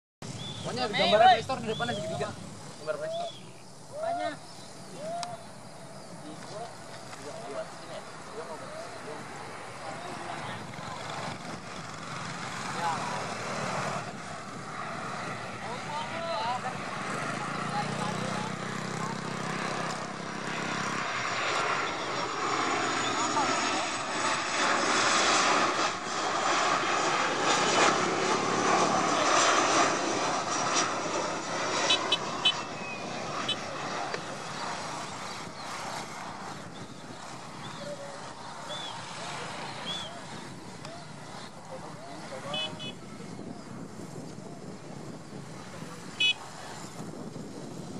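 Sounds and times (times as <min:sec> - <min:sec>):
jet engines passing overhead: 0:00.2 - 0:47.9.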